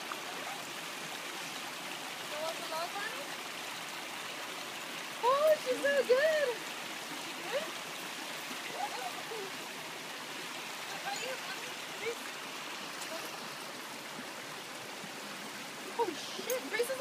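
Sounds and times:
water rushing over stones: 0:00.0 - 0:17.0.

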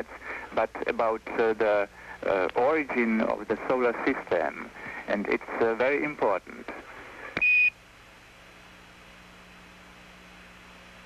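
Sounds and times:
faint radio hiss with low hum: 0:00.0 - 0:11.0.

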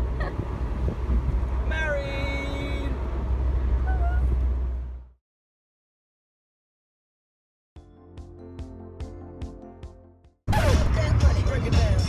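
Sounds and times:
road noise rumble: 0:00.0 - 0:05.2, 0:10.5 - 0:12.0
wind buffeting microphone: 0:00.3 - 0:01.6.

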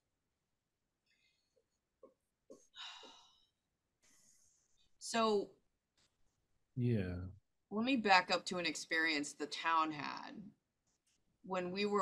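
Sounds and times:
breathy sigh: 0:02.8 - 0:03.4.

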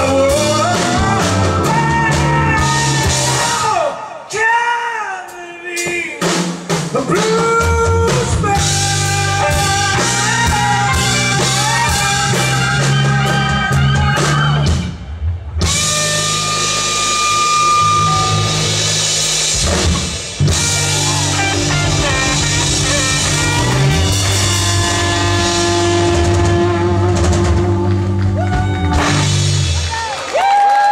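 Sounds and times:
blues-rock band playing: 0:00.0 - 0:04.0, 0:05.8 - 0:30.3.

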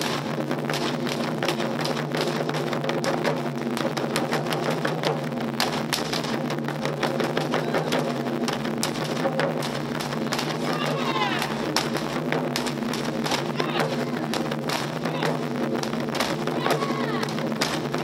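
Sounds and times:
taiko drums beating fast: 0:00.0 - 0:18.0.

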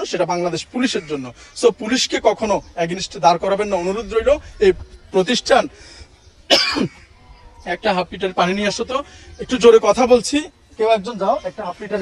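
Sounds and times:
man coughing: 0:06.5 - 0:07.0.

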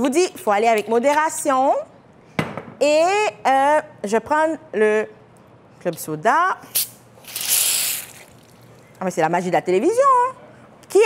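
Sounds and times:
hiss of gas from opened bottle: 0:06.7 - 0:08.4
soda fizzing: 0:06.8 - 0:08.6.

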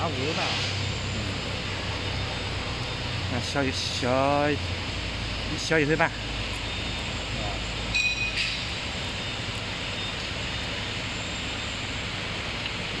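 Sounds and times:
factory workshop noise: 0:00.0 - 0:13.0.

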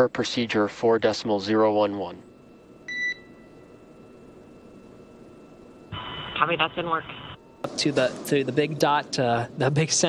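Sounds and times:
faint radio channel hiss: 0:00.0 - 0:02.8, 0:03.7 - 0:10.0.

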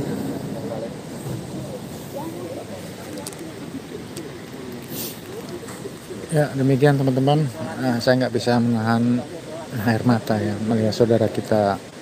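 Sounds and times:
chatter of many people: 0:00.0 - 0:12.0
faint clicks: 0:03.0 - 0:06.2.

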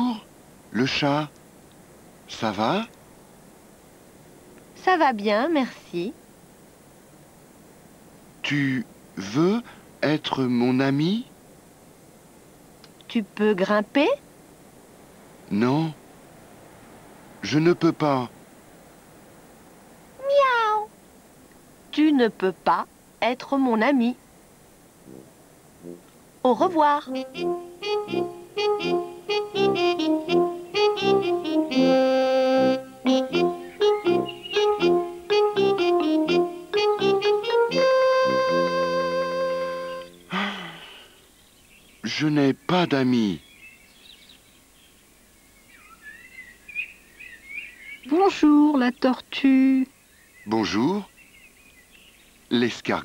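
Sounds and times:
cartoon cat meow: 0:20.2 - 0:20.9
faint birdsong: 0:21.9 - 0:37.7, 0:39.9 - 0:53.0.

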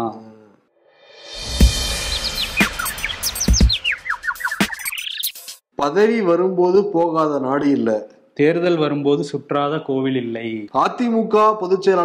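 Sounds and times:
rising sweep: 0:01.0 - 0:05.1
falling electronic chirps: 0:01.6 - 0:05.6.

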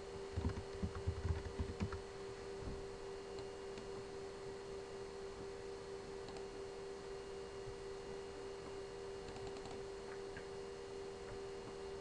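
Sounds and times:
steady electrical hum: 0:00.0 - 0:12.0
faint computer clicks: 0:06.2 - 0:06.5, 0:09.2 - 0:10.5.

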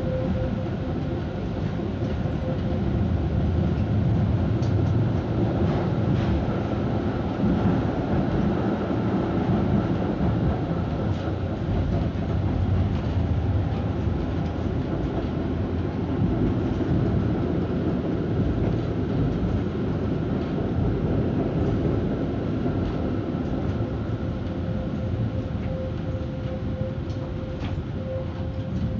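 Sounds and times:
tram wheels rumbling on rails: 0:00.0 - 0:28.9.

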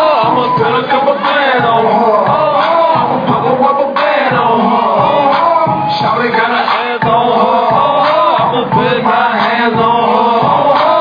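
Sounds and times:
crowd chanting along: 0:00.0 - 0:11.0
live hip-hop music: 0:00.0 - 0:11.0.

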